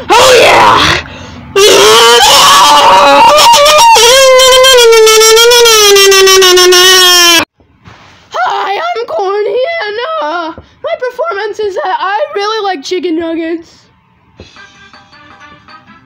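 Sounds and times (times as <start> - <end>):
distorted voice screaming: 0.0 - 7.4.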